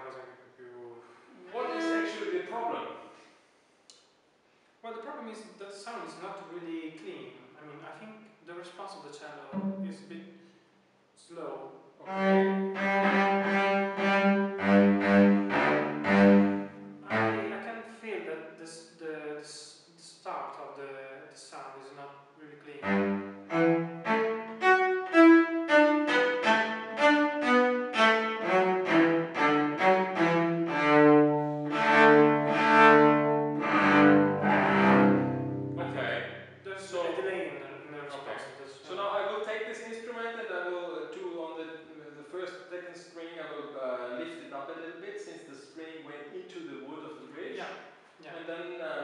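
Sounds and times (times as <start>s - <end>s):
cello bowed notes: 1.3s - 2.9s, 9.4s - 10.3s, 12.0s - 17.7s, 22.7s - 37.3s.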